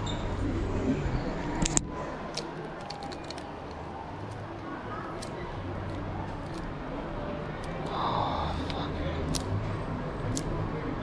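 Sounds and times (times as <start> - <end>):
plastic clothes hangers clicking: 1.6 - 6.7, 8.6 - 9.6.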